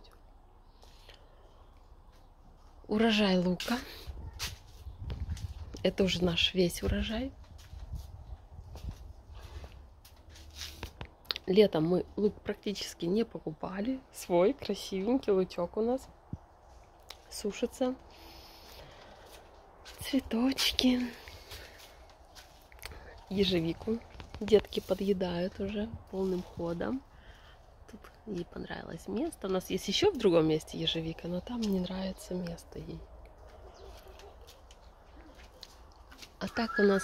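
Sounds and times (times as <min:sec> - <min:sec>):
low wind rumble: 0:00.2 - 0:10.1, 0:12.0 - 0:37.0.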